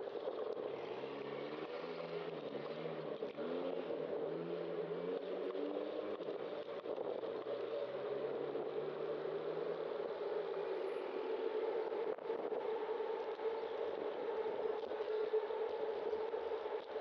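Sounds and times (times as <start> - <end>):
vehicle engines passing: 0.2 - 17.0.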